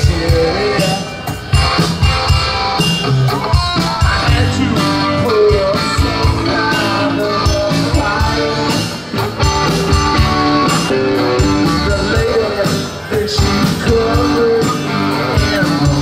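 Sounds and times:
drum kit beat: 0.0s - 16.0s
live rock band playing: 0.0s - 16.0s.

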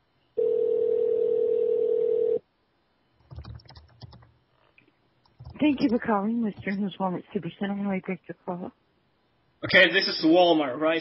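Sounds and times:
telephone ringback tone: 0.4s - 2.4s.

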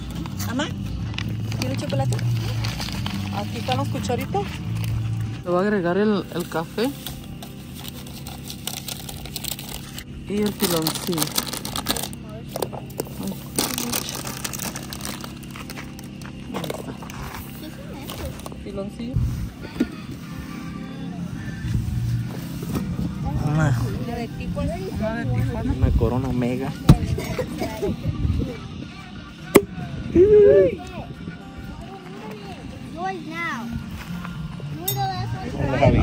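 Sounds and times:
background music: 0.0s - 36.0s
plastic bag crinkling: 7.2s - 12.2s, 12.9s - 17.1s.

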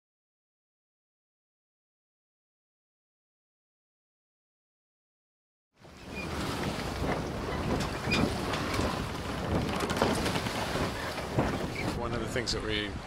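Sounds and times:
harbour ambience: 5.8s - 13.0s
wind buffeting microphone: 5.8s - 13.0s.

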